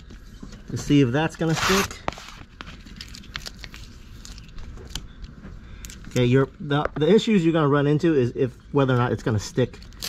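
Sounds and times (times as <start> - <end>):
vinyl film crackling: 0.0 - 7.0.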